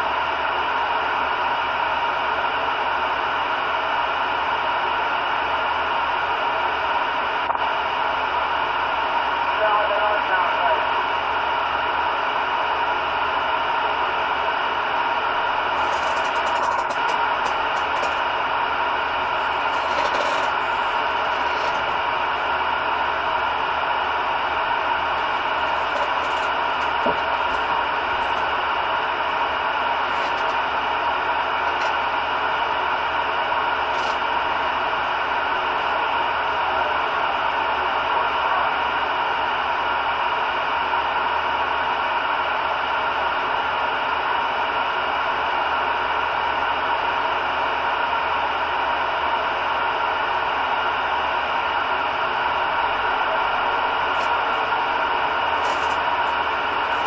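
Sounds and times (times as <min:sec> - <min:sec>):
radio static hiss: 0:06.4 - 0:39.2, 0:51.6 - 0:57.0
faint radio voice fragments: 0:09.5 - 0:11.0, 0:15.6 - 0:18.4, 0:19.2 - 0:22.5, 0:24.9 - 0:28.5.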